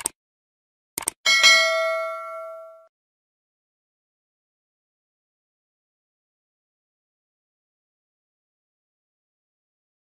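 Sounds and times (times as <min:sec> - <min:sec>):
bell notification ding: 0:01.3 - 0:02.9.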